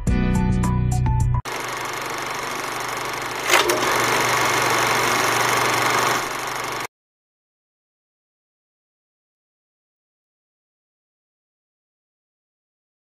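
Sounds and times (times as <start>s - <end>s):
film projector rattling: 1.5s - 6.9s.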